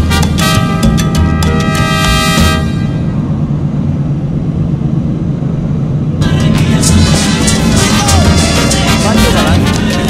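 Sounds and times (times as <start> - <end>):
music: 0.0 - 2.8, 6.2 - 10.0
car engine and road noise: 0.0 - 10.0.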